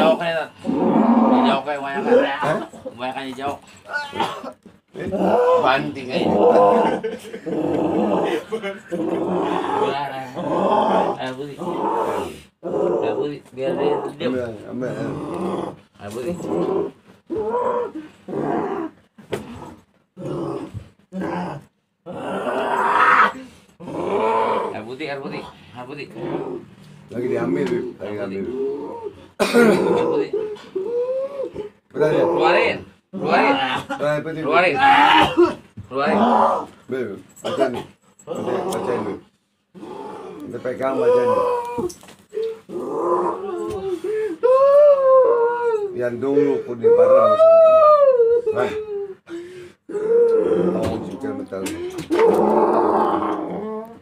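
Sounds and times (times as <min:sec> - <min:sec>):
person growling and groaning: 0:00.0 - 0:02.7, 0:03.9 - 0:24.9, 0:26.1 - 0:26.7, 0:28.4 - 0:33.8, 0:34.6 - 0:36.8, 0:38.3 - 0:49.2, 0:49.8 - 0:54.0
person howling and wailing: 0:29.8 - 0:32.7, 0:34.7 - 0:36.7, 0:39.9 - 0:46.0, 0:46.8 - 0:49.2, 0:49.9 - 0:54.0.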